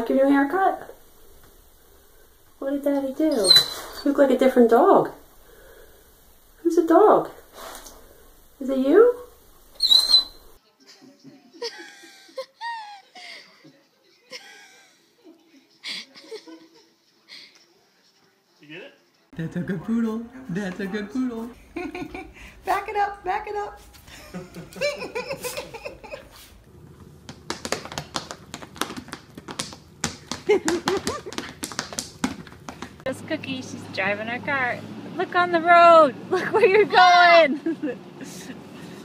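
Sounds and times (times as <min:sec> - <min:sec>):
dog paws tapping on wooden floor: 0:00.0 - 0:10.6, 0:22.7 - 0:34.3
person laughing: 0:10.9 - 0:15.0, 0:24.1 - 0:26.5, 0:30.4 - 0:31.6.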